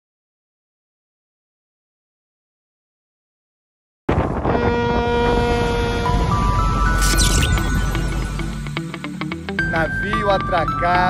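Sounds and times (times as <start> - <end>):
wind on microphone: 4.1 - 7.0
steady pitched tone: 5.3 - 9.4.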